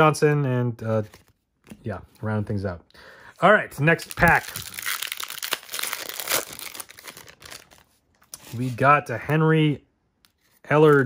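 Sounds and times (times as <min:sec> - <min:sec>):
foil wrapper crinkling and tearing: 0:04.0 - 0:07.9.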